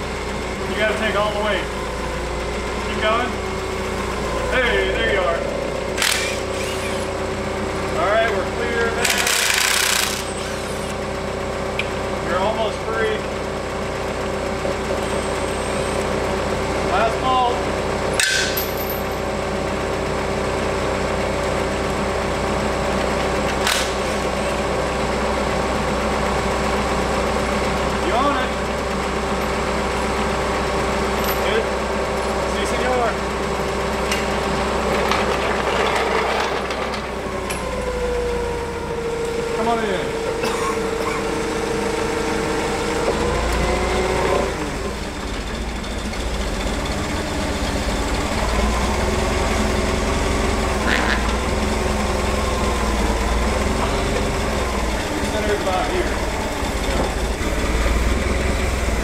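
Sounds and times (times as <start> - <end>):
forklift engine idling: 0.0 - 59.0.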